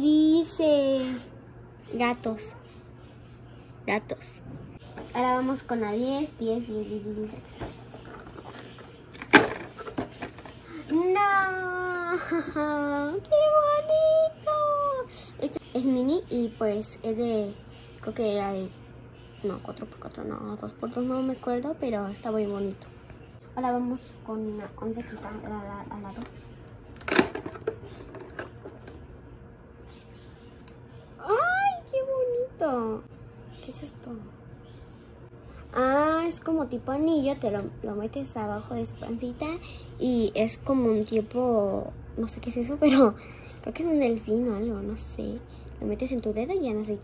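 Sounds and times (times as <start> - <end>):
toy box clicks and rustles: 7.9 - 10.9, 27.0 - 29.0.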